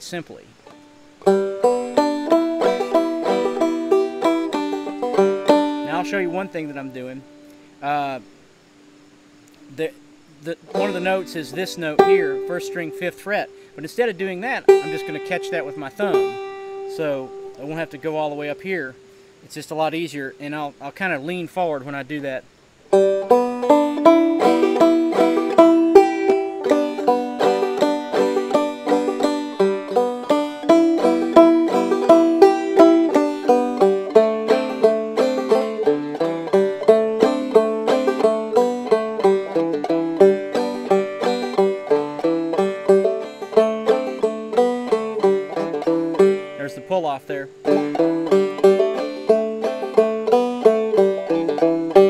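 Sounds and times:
banjo playing fiddle tune: 0.0 - 8.3, 9.5 - 52.0.

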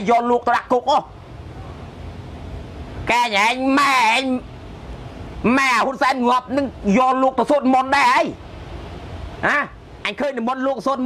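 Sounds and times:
person speaking: 0.0 - 1.2, 3.0 - 4.5, 5.4 - 8.4, 9.4 - 11.0
faint hiss: 0.0 - 11.0
low background rumble: 0.0 - 11.0.

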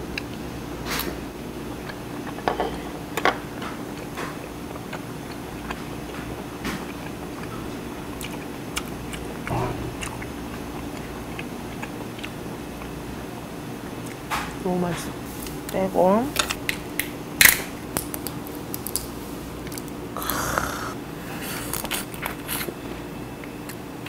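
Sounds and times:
person chewing food: 3.5 - 13.1, 17.9 - 23.9.

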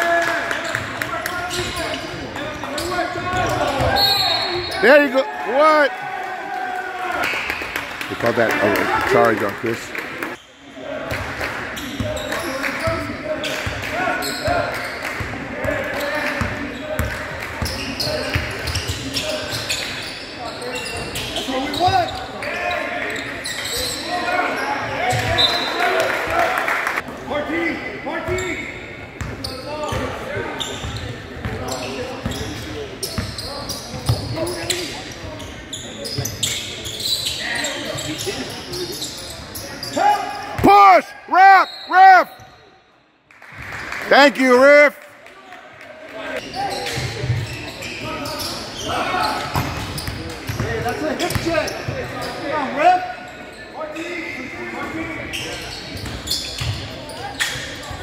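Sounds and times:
sneakers squeaking on hardwood: 0.7 - 5.0, 15.6 - 25.7, 29.2 - 40.7, 46.4 - 52.5, 55.2 - 58.0
loud short squeals: 2.8 - 5.0.

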